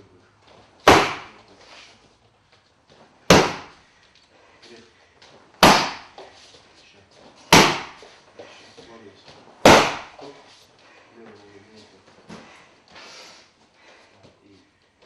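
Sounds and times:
kicks slapping a kick shield: 0.8 - 1.4, 3.3 - 3.8, 5.6 - 6.2, 7.5 - 8.1, 9.6 - 10.2.

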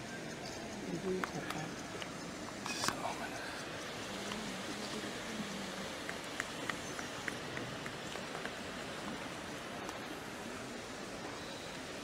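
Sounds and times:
outdoor crowd hubbub: 0.0 - 12.0.

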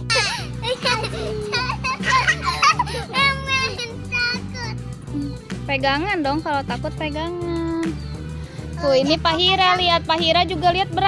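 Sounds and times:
children calling out and laughing: 0.0 - 5.4
background music with bass line: 0.0 - 11.0.

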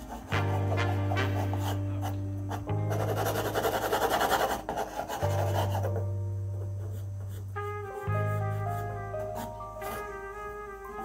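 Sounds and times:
pencil scratching on paper: 0.0 - 6.1, 6.8 - 10.2
background music with bass notes: 0.0 - 11.0.

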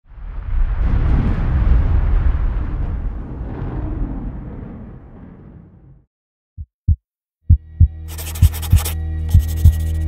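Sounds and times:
heartbeat thumps: 6.6 - 9.9.

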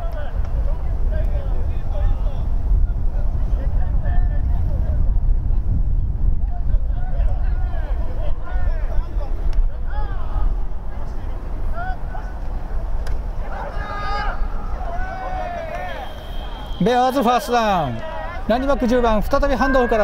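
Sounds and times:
wind buffeting microphone: 0.0 - 16.8
distant players shouting: 7.1 - 20.0.

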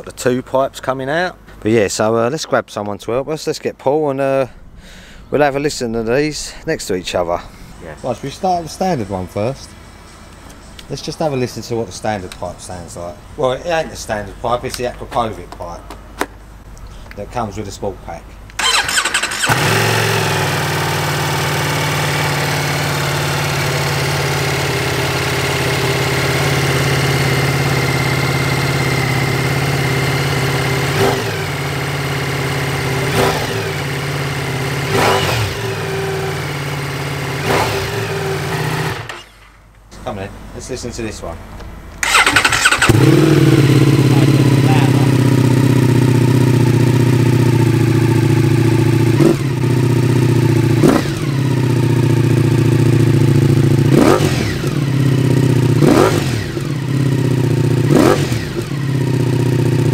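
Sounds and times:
motorcycle engine idling: 18.6 - 34.9, 35.6 - 39.2, 42.0 - 59.9.

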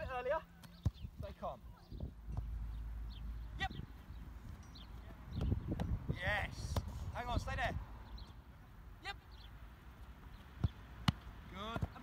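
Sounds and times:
wind rumble on microphone: 1.8 - 2.4, 3.6 - 8.0.

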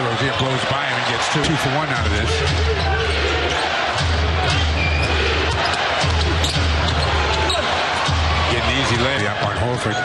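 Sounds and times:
arena crowd noise: 0.0 - 10.0
sneaker squeaks: 4.7 - 7.7.

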